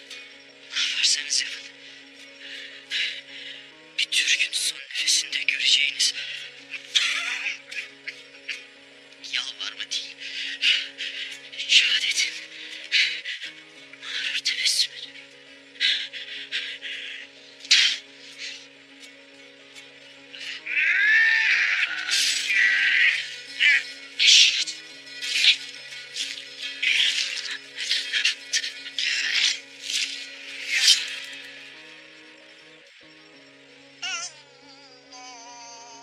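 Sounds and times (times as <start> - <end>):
dramatic film score low notes: 0.0 - 35.5
wavering sliding cry: 20.4 - 24.6.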